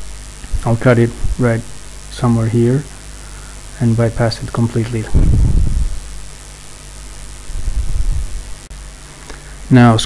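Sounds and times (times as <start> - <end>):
handling noise rumbling: 5.1 - 6.2.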